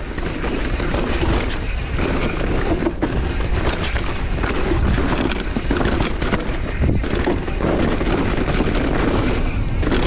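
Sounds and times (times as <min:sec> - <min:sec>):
bike rattling: 0:00.0 - 0:10.0
bike tyres rolling over dirt: 0:00.0 - 0:10.0
wind on microphone: 0:00.0 - 0:10.0.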